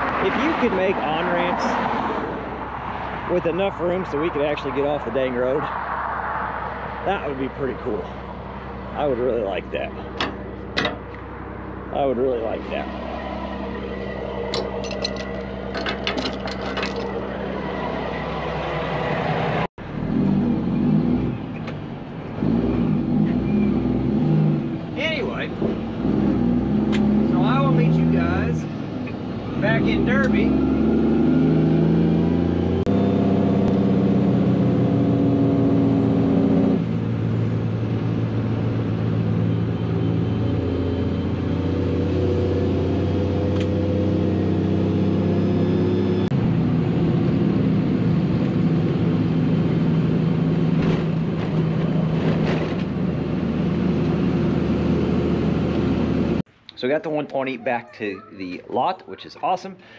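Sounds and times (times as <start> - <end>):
diesel truck engine running: 8.1 - 19.7.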